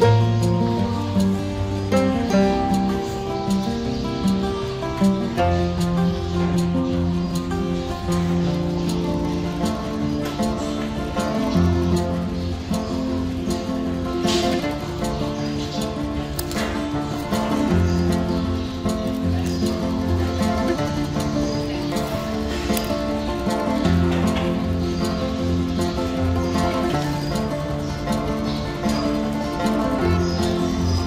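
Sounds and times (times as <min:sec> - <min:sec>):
instrumental background music: 0:00.0 - 0:31.0.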